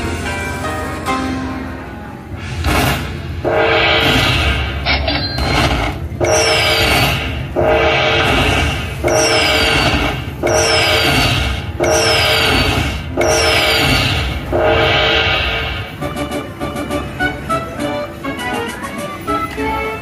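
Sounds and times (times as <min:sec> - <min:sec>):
slot machine win jingle: 0:06.2 - 0:20.0.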